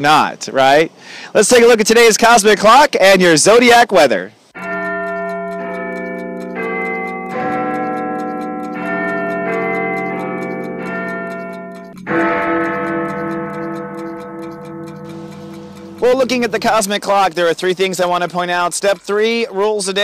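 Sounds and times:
clock ticking: 4.6s - 20.0s.

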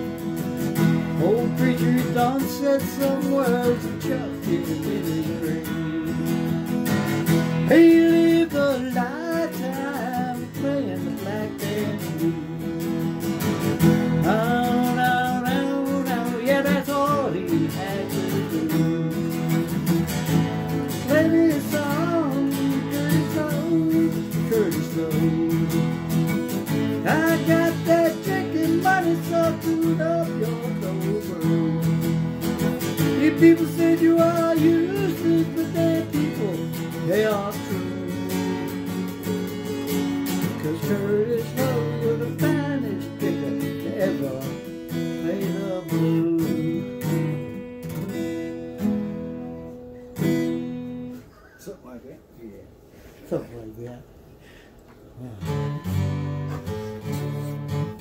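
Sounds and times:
acoustic guitar playing: 0.0s - 53.3s, 54.1s - 58.0s.

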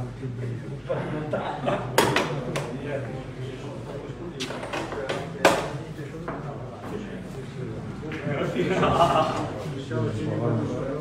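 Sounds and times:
low background voices: 0.0s - 11.0s.

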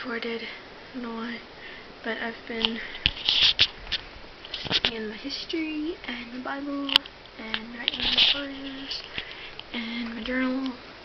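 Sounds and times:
phone handling rustle and scrape: 2.6s - 5.0s, 7.6s - 9.7s.

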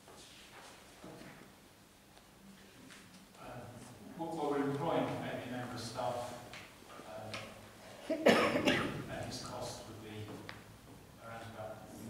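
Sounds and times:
person speaking: 3.3s - 10.5s
person coughing harshly: 8.1s - 9.0s.

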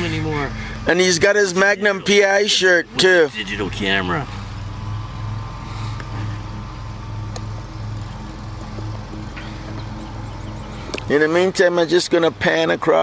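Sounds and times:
engine humming: 0.0s - 13.0s.

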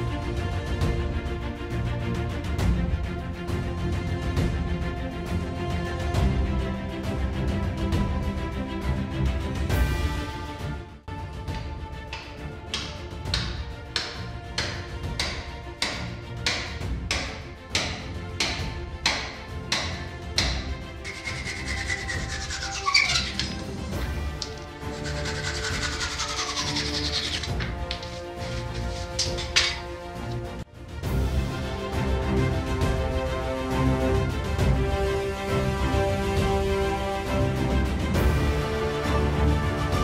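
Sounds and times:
background music: 0.0s - 40.0s
sharp knocks: 12.2s - 20.7s.

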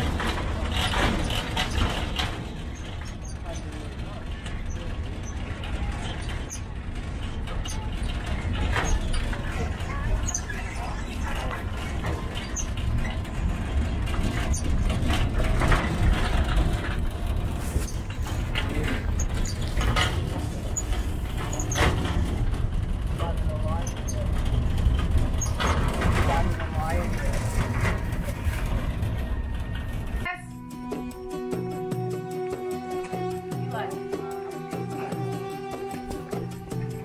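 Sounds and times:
tram rumbling along road: 0.0s - 37.0s
indistinct voices: 15.2s - 31.8s
music: 30.2s - 37.0s.

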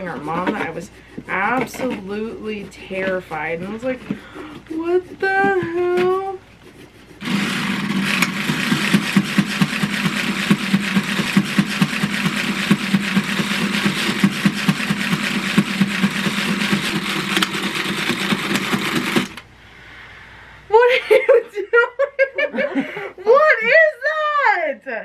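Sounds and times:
electric saw cutting pumpkin: 7.2s - 19.4s.

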